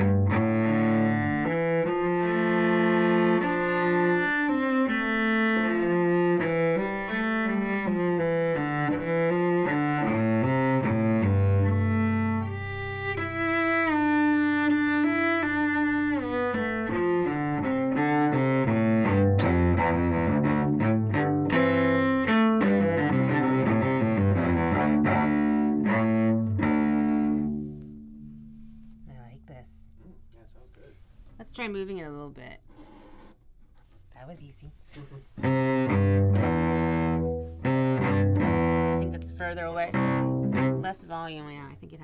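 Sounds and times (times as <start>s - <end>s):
solo cello melody: 0.0s - 29.5s, 35.2s - 41.8s.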